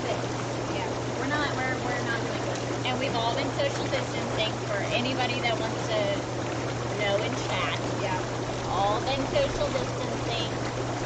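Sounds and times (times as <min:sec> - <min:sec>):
low motor hum: 0:00.0 - 0:11.0
water churning and frothing: 0:00.0 - 0:11.0.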